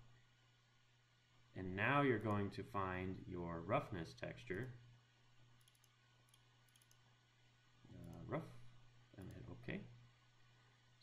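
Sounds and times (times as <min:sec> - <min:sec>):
low steady hum: 0:00.0 - 0:11.0
computer mouse clicks: 0:05.6 - 0:07.0.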